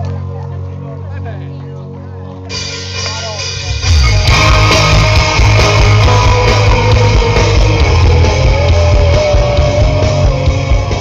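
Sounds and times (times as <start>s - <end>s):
bass: 0.0s - 11.0s
distorted electric guitars: 0.0s - 11.0s
drums: 2.4s - 11.0s.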